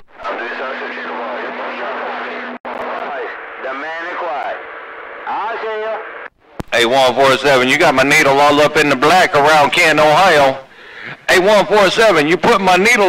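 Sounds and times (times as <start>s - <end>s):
garbled radio voices: 0.0s - 13.0s
radio static hiss: 0.0s - 13.0s.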